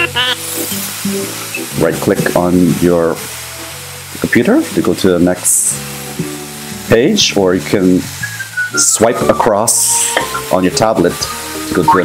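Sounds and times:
frying hiss: 0.0 - 12.0.

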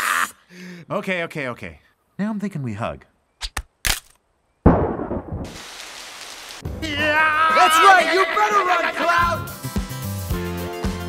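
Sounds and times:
loud sudden hit: 4.7 - 5.6
rushing hiss: 5.5 - 6.6.

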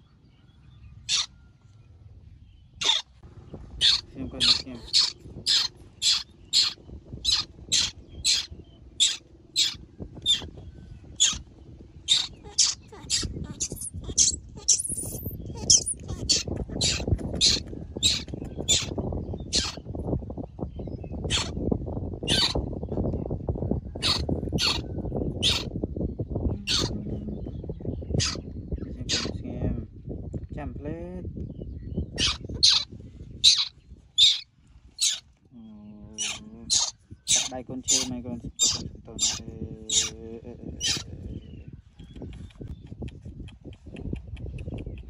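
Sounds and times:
baby monkey screaming: 1.1 - 1.3, 2.8 - 3.1, 3.8 - 10.5, 11.2 - 11.4, 12.1 - 18.9, 19.5 - 19.8, 21.3 - 21.6, 22.2 - 22.6, 24.0 - 24.8, 25.4 - 25.7, 26.6 - 26.9, 28.2 - 29.4, 32.2 - 35.2, 36.2 - 40.2, 40.8 - 41.1.

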